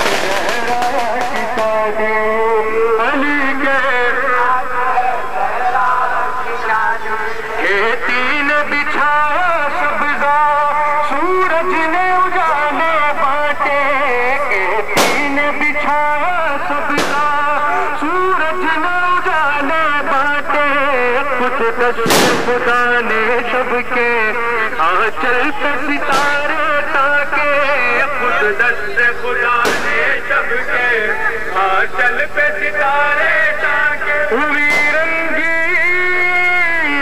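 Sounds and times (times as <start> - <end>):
firecracker bangs: 0.0 - 1.9, 15.0 - 16.0, 16.9 - 17.6, 22.0 - 22.9, 26.1 - 26.6, 29.6 - 30.2, 34.6 - 35.2
loud music with sung melody: 0.0 - 37.0.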